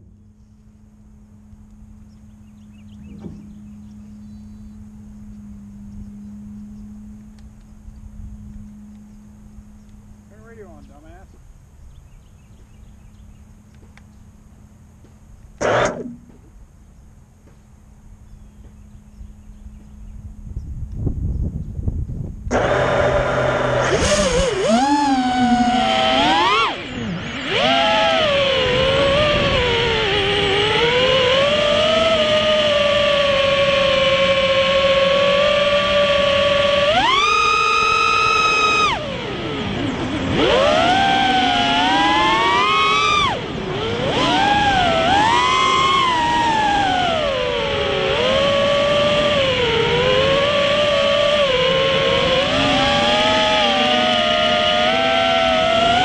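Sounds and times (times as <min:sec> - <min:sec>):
quadcopter motors whining: 0:00.0 - 0:56.0.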